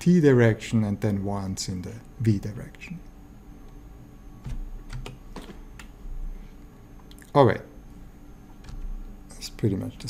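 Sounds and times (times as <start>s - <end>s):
computer keys clicking: 4.4s - 6.0s.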